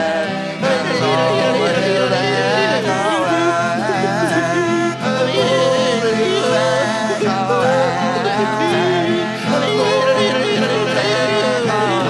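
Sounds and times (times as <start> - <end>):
acoustic guitar: 0.0 - 12.0
harmonium drone: 0.0 - 12.0
men singing together: 0.0 - 12.0.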